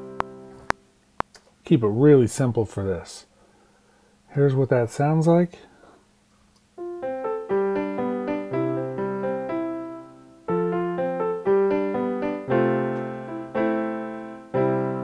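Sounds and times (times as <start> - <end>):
piano melody: 0.0 - 0.8, 6.8 - 15.0.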